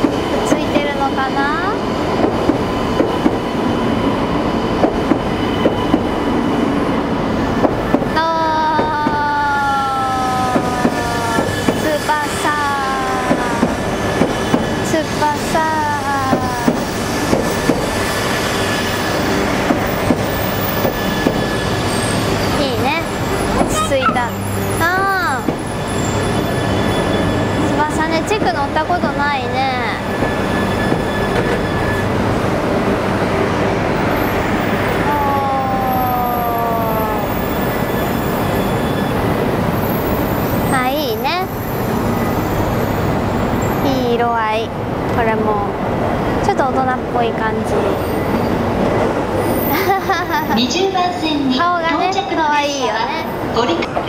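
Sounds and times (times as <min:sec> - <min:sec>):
train running noise: 0:00.0 - 0:54.0.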